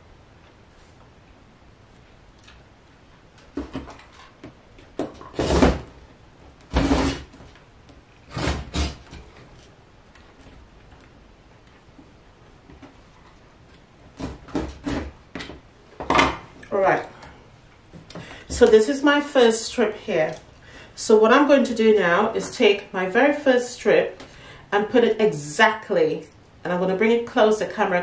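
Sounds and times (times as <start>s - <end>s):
rotary cutter slicing fabric: 5.4s - 5.8s, 6.7s - 7.3s, 8.3s - 9.0s.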